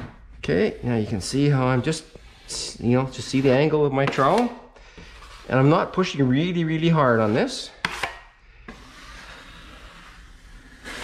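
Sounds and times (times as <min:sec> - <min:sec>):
taping knife scraping wall: 0:00.6 - 0:06.5, 0:07.1 - 0:11.0.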